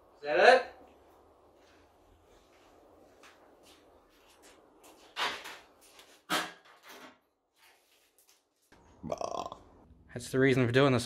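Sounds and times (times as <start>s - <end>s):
croaky throat sound: 9.0s - 9.8s.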